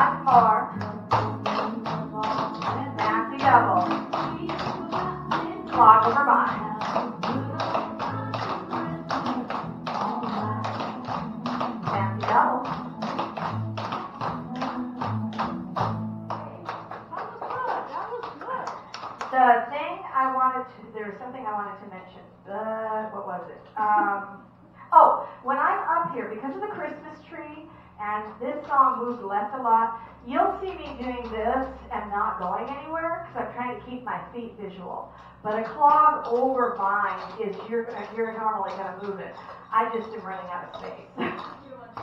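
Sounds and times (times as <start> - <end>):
women talking: 0.0 - 7.6, 11.8 - 12.7, 16.4 - 42.0
country music: 0.0 - 17.1.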